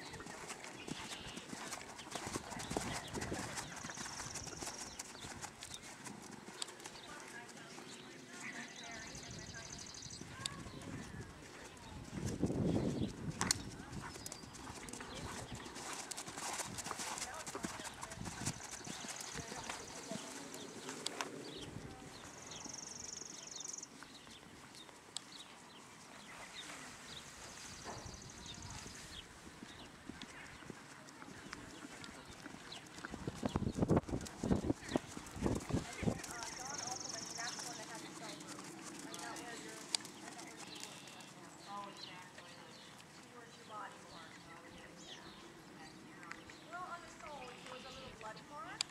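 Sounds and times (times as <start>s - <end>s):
horse hooves on sand: 0.0s - 45.4s.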